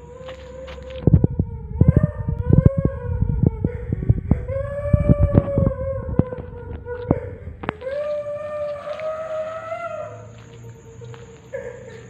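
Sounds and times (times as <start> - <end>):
long drawn-out wail: 0.0 - 12.0.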